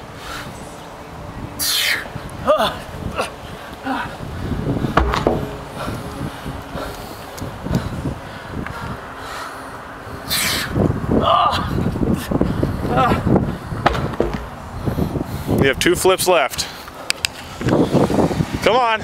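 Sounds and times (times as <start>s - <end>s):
tractor tire thudding on asphalt: 4.9s - 6.2s, 13.8s - 15.0s
man breathing heavily: 5.9s - 10.3s, 11.7s - 13.9s, 14.6s - 15.6s.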